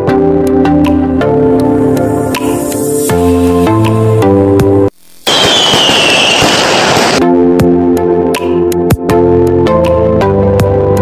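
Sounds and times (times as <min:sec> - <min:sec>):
firework crackling burst: 0:04.9 - 0:07.2
falling firework whistle: 0:05.2 - 0:07.2.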